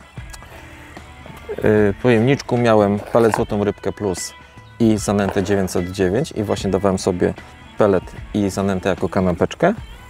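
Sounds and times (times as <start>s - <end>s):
man talking: 1.4s - 9.8s.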